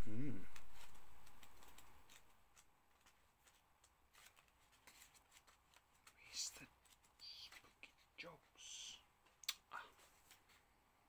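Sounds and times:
faint clicks and rustles: 0:00.5 - 0:10.8.

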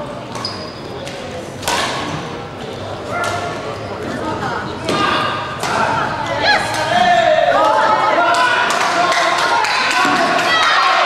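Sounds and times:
shoe squeak: 0:00.4 - 0:01.0
racket striking shuttlecock: 0:01.6 - 0:02.2.

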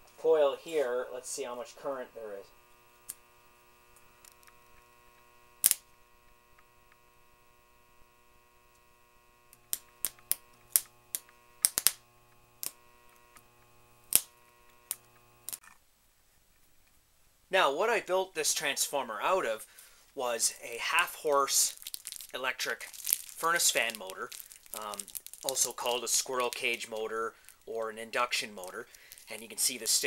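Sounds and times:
snapping clicks of arcing: 0:02.9 - 0:05.9, 0:09.5 - 0:15.7, 0:21.6 - 0:27.8.

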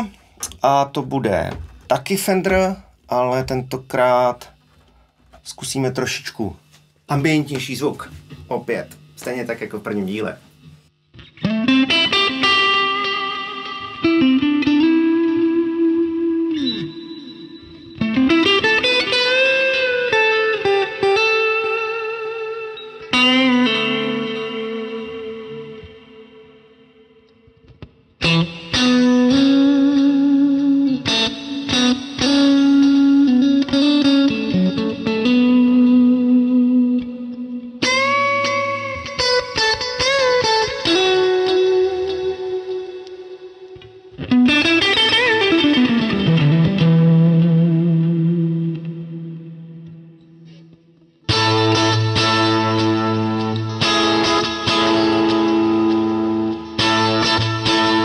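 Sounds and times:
electric guitar chords and melody: 0:10.4 - 0:58.0.

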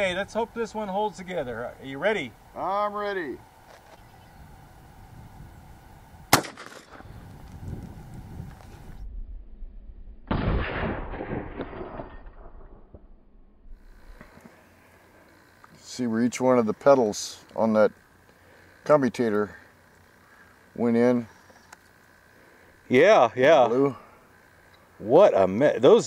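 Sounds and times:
shotgun shot with echo: 0:06.3 - 0:07.0, 0:10.3 - 0:12.7
dull boom: 0:09.1 - 0:13.7.

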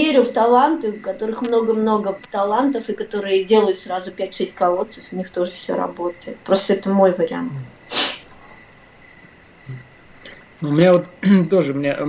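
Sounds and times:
background hiss: 0:00.0 - 0:12.0
faint high whine: 0:00.0 - 0:12.0
breathy hiss: 0:07.5 - 0:08.8, 0:09.6 - 0:10.7.

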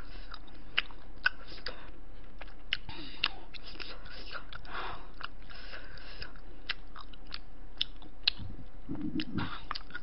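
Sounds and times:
person chewing food: 0:00.0 - 0:10.0
wet mouth clicks: 0:06.2 - 0:10.0.

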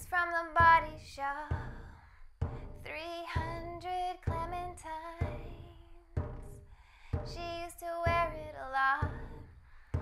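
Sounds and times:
woman singing wordless melody: 0:00.0 - 0:06.5, 0:07.1 - 0:10.0
backing music with low beat: 0:00.6 - 0:10.0.

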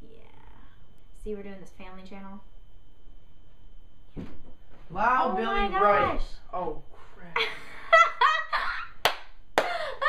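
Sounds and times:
woman laughing excitedly: 0:07.4 - 0:09.0, 0:09.6 - 0:10.0
hand claps: 0:09.0 - 0:09.8.

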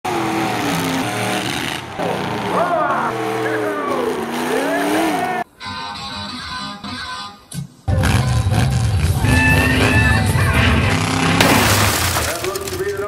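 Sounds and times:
car engines revving: 0:00.0 - 0:05.5, 0:07.9 - 0:12.7
arena noise: 0:01.8 - 0:05.5.

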